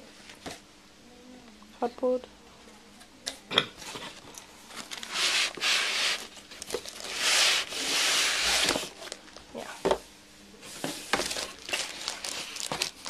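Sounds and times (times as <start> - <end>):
packaging rustling: 4.7 - 9.5, 11.0 - 13.0.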